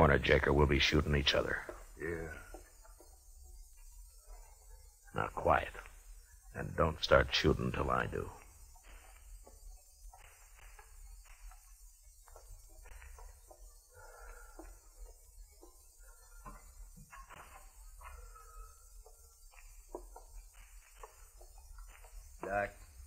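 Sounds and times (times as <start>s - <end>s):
creeping footsteps: 0.0s - 23.0s.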